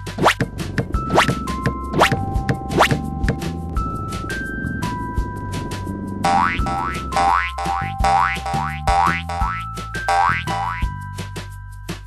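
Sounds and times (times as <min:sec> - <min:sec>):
children's music with steady beat: 0:00.0 - 0:12.0
cartoon boing effects: 0:06.3 - 0:10.9.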